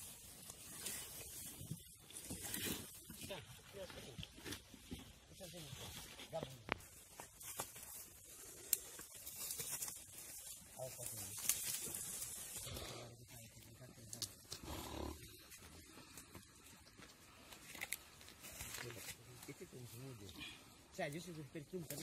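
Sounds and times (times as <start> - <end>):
scraping and rustling in leaves: 0.0 - 3.9, 5.4 - 14.2.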